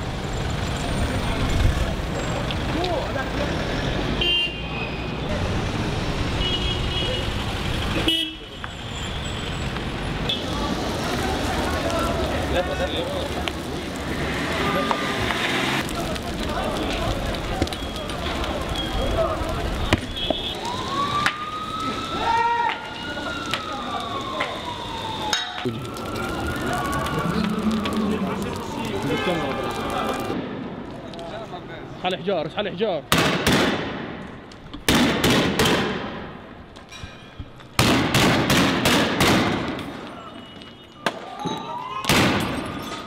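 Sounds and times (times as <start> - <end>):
street noise: 0.0 - 43.0
sharp cracks: 11.0 - 31.3, 33.1 - 36.3, 37.7 - 40.1
siren wailing: 20.5 - 30.4, 40.2 - 42.1
gunshots echoing: 37.8 - 39.7.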